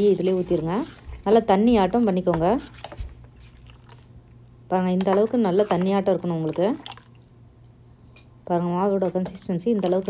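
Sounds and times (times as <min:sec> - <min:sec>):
woman speaking: 0:00.0 - 0:02.8, 0:04.7 - 0:06.8, 0:08.4 - 0:10.0
ladle stirring batter in pot: 0:00.0 - 0:07.2, 0:08.8 - 0:10.0.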